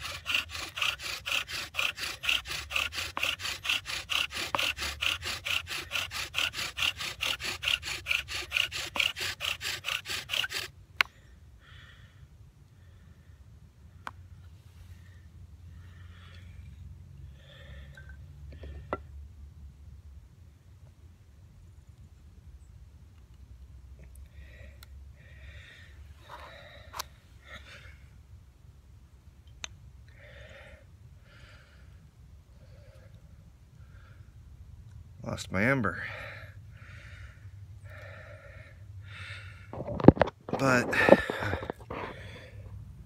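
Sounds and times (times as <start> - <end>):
sharp wooden clicks: 0.0 - 10.7
man breathing hard: 0.0 - 13.5, 15.2 - 18.8, 24.3 - 28.2, 30.1 - 33.2, 36.0 - 39.9, 40.8 - 42.8.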